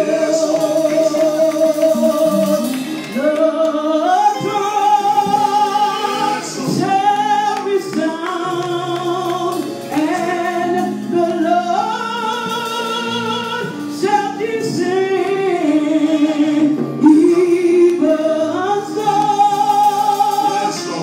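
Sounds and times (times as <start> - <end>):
musical accompaniment: 0.0 - 21.0
woman singing gospel: 0.0 - 21.0.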